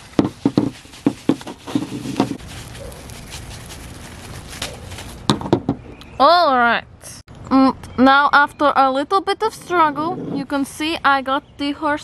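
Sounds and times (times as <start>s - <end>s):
plastic wrap crinkling: 0.0s - 5.4s.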